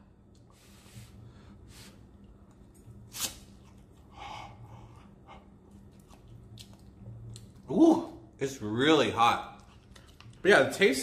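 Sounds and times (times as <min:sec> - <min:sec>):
person breathing and eating noodles: 0:00.4 - 0:02.2, 0:03.9 - 0:05.8.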